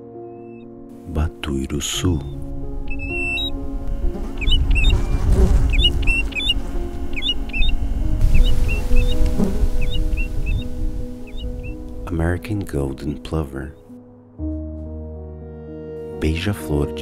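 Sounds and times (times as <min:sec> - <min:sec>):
soft ambient music: 0:00.0 - 0:17.0
bird whistled calls: 0:00.2 - 0:00.7, 0:02.2 - 0:03.6, 0:04.3 - 0:09.2, 0:09.8 - 0:11.8.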